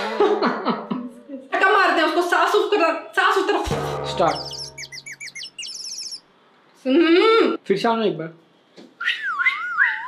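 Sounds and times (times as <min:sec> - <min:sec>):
small bird chirping: 0:04.1 - 0:06.3.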